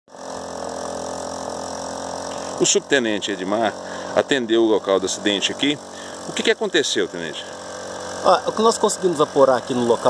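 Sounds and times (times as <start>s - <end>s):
engine idling: 0.1s - 10.0s.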